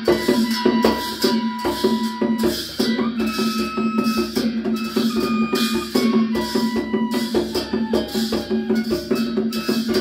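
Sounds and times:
barrel drum beat: 0:00.0 - 0:10.0
flute holding high notes: 0:00.0 - 0:10.0
hand cymbals clashing: 0:00.0 - 0:10.0.

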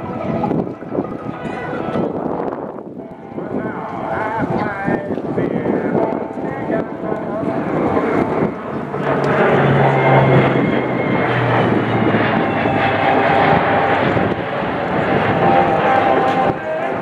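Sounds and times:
turboprop aircraft droning overhead: 0:00.0 - 0:17.0.

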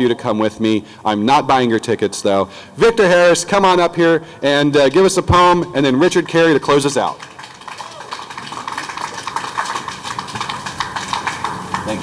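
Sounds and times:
audience clapping: 0:05.9 - 0:12.0.

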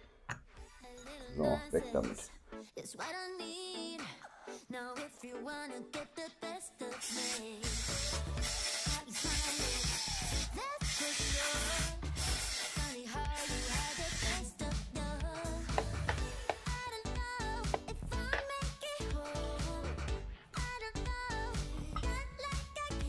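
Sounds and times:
background music: 0:00.0 - 0:23.0
aerosol spray can hissing: 0:07.0 - 0:14.5, 0:15.6 - 0:16.8.

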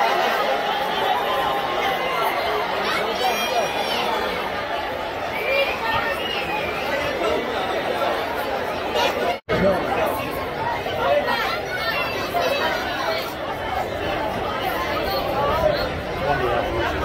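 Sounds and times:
babble of overlapping voices: 0:00.0 - 0:17.0.

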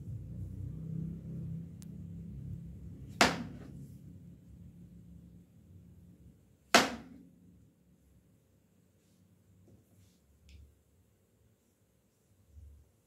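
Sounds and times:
knife chopping on cutting board: 0:03.2 - 0:03.7.

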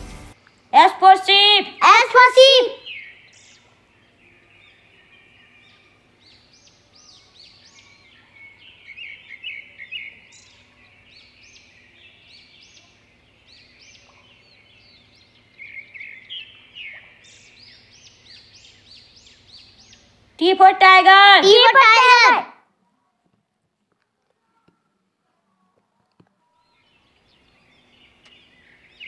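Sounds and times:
birds chirping: 0:00.0 - 0:22.5, 0:24.4 - 0:29.0.

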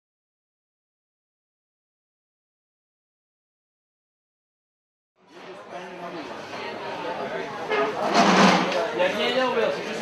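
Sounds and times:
voices talking in a hall: 0:05.2 - 0:10.0.

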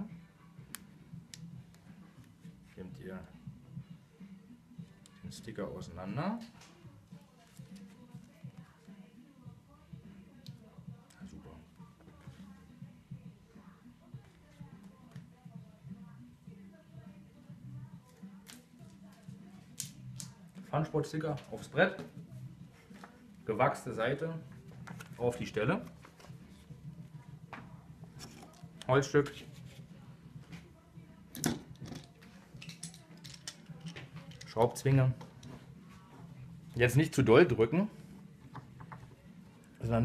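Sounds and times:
metal clamp handling clicks: 0:31.4 - 0:34.6.

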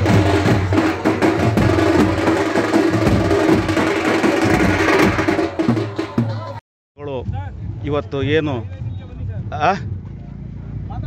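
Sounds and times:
fast steady drumming: 0:00.0 - 0:06.6.

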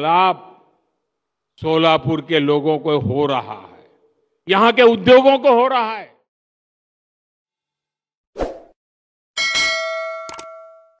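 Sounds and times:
bright metallic ding: 0:09.4 - 0:11.0.

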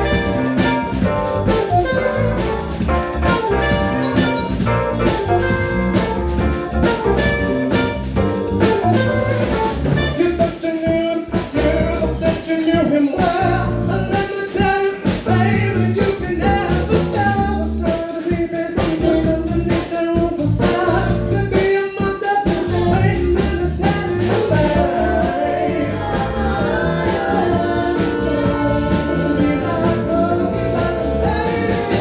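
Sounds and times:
steady drum beat: 0:00.0 - 0:32.0
person singing: 0:10.2 - 0:32.0
keyboard: 0:22.7 - 0:32.0.

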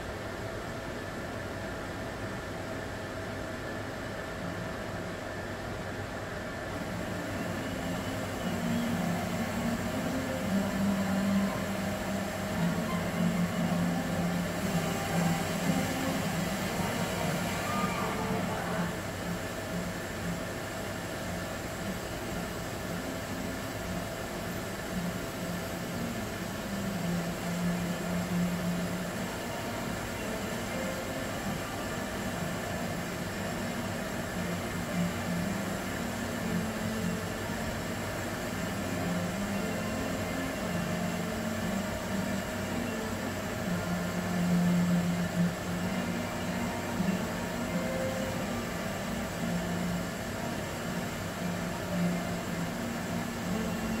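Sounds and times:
television background hiss: 0:00.0 - 0:54.0.

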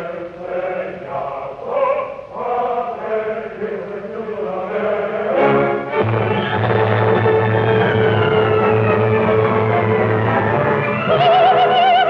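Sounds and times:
operatic voices singing: 0:00.0 - 0:12.0.

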